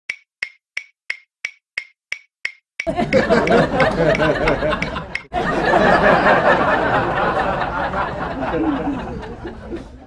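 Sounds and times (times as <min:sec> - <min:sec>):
clock ticking: 0:00.1 - 0:05.4.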